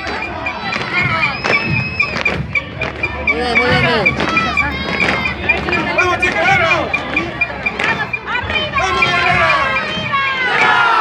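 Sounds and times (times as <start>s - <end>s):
marching music with drums: 0.0s - 11.0s.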